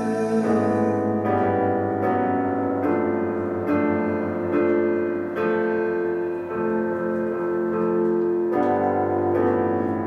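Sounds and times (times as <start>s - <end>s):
piano playing sustained chords: 0.0s - 10.0s.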